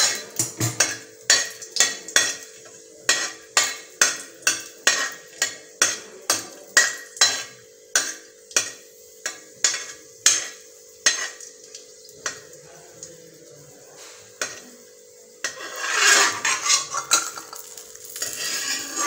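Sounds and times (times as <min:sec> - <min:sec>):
metal spoon scraping metal pan: 0:00.0 - 0:11.4, 0:15.4 - 0:19.0.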